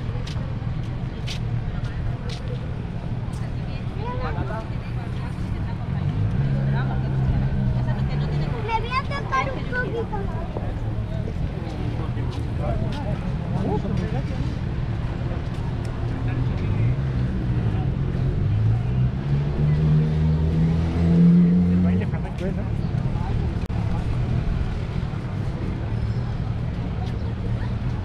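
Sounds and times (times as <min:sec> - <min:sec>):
faint voices of passers-by: 0:00.0 - 0:28.0
low rumble of traffic: 0:00.0 - 0:28.0
wind: 0:00.0 - 0:28.0
vehicle accelerating past: 0:16.9 - 0:22.1.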